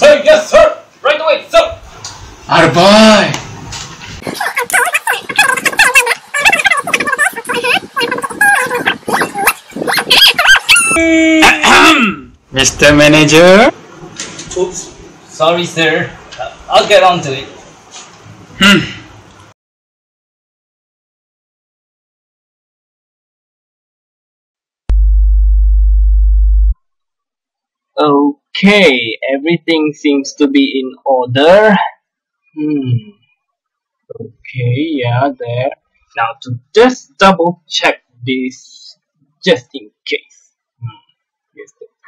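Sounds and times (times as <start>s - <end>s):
animal-like calls: 4.4s - 12.2s
low electronic tone: 24.9s - 26.8s.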